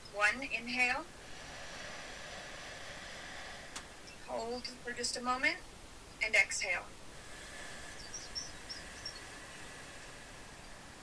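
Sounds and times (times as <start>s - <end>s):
man inhaling deeply: 1.1s - 4.3s, 6.9s - 11.0s.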